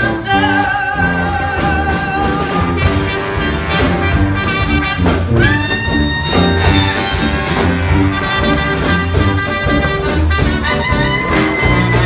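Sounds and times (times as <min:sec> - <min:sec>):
jazz band playing swing: 0:00.0 - 0:12.0.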